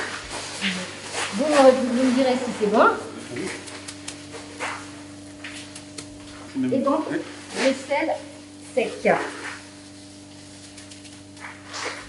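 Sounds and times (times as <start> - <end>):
steady hum: 0.0 - 12.0
hands rubbing salt into meat: 10.2 - 12.0.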